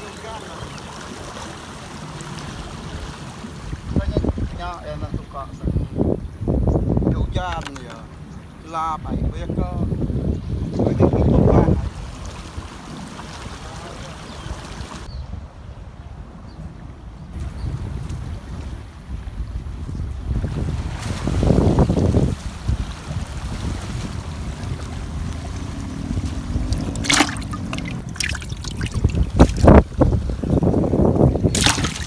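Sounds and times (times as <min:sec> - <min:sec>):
wind buffeting microphone: 0:02.5 - 0:32.0.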